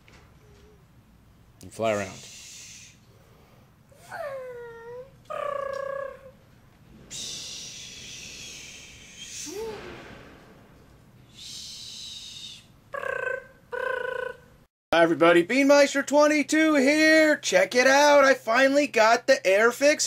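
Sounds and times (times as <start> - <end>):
mouth-made jet noises: 7.0 - 10.6, 11.2 - 12.7.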